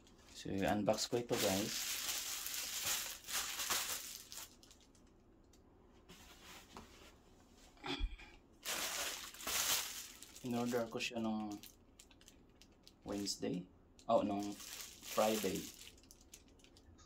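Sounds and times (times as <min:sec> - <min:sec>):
plastic mailer crinkling: 0:00.3 - 0:05.0, 0:08.6 - 0:13.4, 0:14.1 - 0:16.8.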